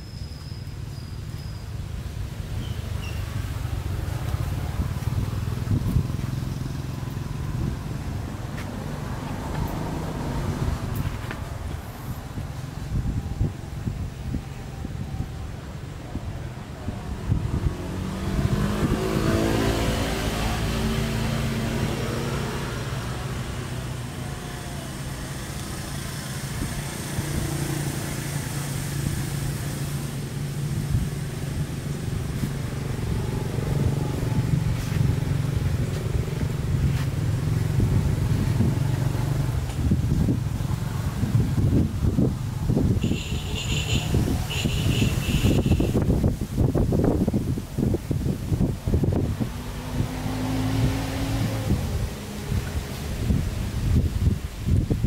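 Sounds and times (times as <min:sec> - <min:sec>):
vehicle engine running: 0:22.8 - 0:47.9.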